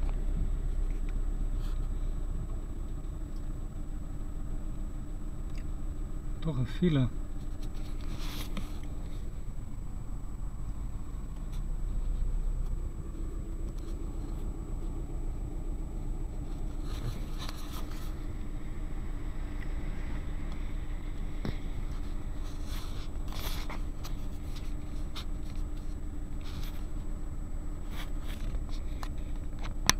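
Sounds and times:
engine and road hum: 0.0 - 29.9.

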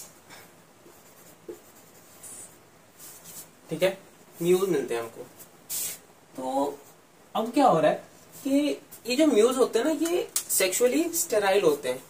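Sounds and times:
marker scratching on whiteboard: 0.8 - 3.5.

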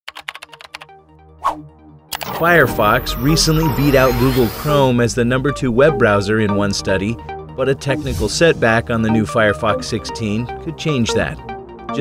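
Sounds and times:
keyboard typing clicks: 0.1 - 0.9.

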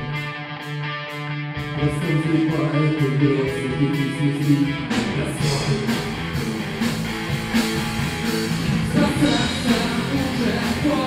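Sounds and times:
bass guitar: 0.0 - 11.0
sustained guitar chords: 0.0 - 11.0.

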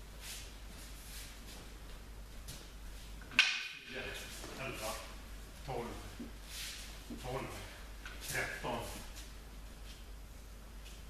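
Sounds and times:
wooden staffs clacking: 2.6 - 4.6.

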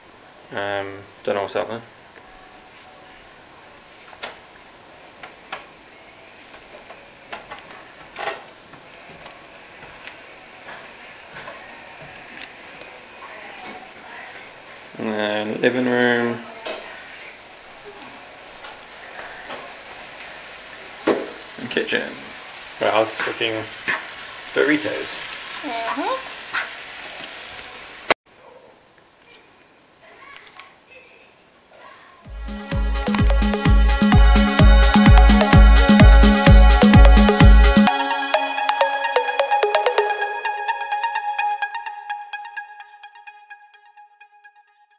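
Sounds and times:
meat sizzling in a frying pan: 18.8 - 28.0.

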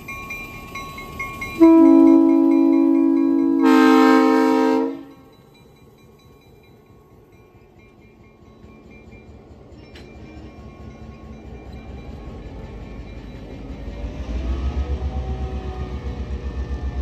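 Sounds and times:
bell ringing: 0.0 - 4.1
train rumbling past: 0.0 - 17.0
locomotive air horn blast: 1.6 - 5.2.

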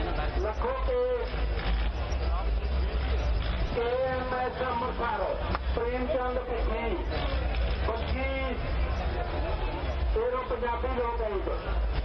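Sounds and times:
crowd noise: 0.0 - 12.0
vehicle engines idling: 0.0 - 12.0.

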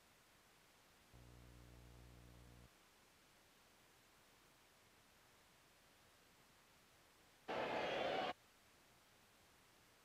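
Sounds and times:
baseball broadcast snippet: 7.5 - 8.4.

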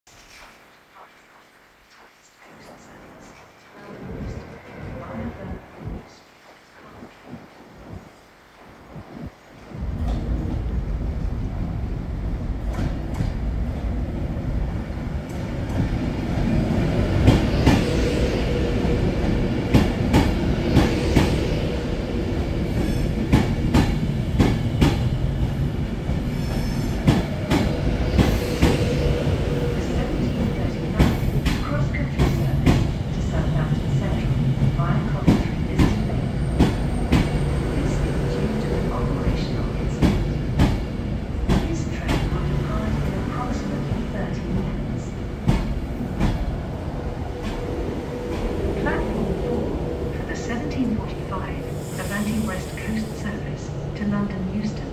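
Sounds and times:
train low rumble: 2.5 - 54.9.

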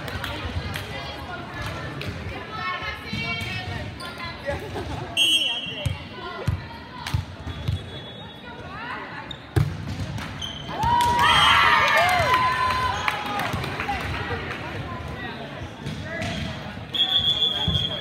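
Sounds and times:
referee's whistle: 5.2 - 6.0, 7.5 - 8.4, 16.4 - 18.0
people shouting and cheering: 10.7 - 14.4.

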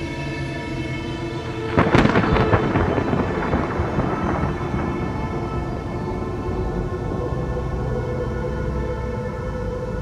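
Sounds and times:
eerie soundtrack music drone: 0.0 - 10.0
loud rumbling crash: 1.7 - 8.3.

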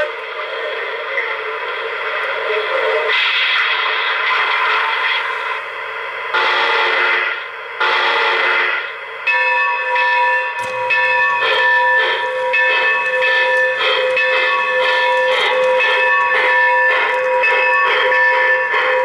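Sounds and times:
locomotive bell ringing: 9.2 - 19.0.

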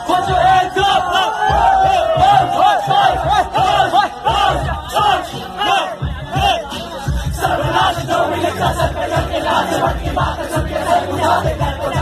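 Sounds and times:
crowd shouting and chanting: 0.0 - 12.0.

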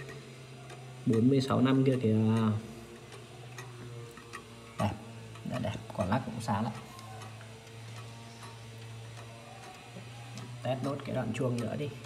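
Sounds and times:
pendulum clock ticking: 0.0 - 12.0
steady low hum: 0.0 - 12.0.

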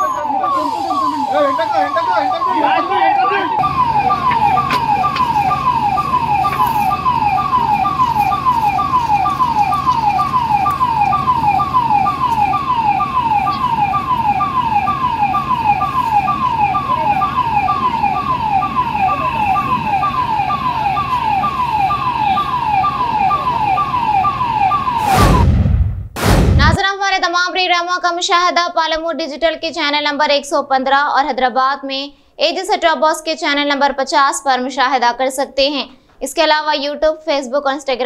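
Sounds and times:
fire engine siren wailing: 0.0 - 25.7
loud whoosh: 25.0 - 26.8
low hum: 25.0 - 26.8.

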